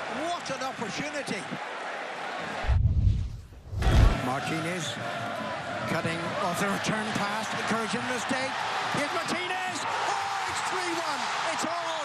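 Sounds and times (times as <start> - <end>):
stadium crowd noise: 0.0 - 12.0
deep booming rumble effect: 2.7 - 4.2.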